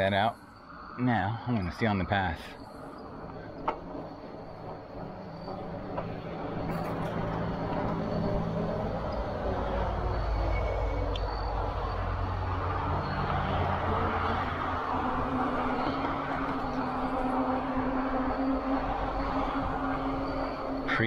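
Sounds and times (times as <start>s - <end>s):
low hum: 1.6s - 21.0s
tyres rumbling on path: 2.6s - 21.0s.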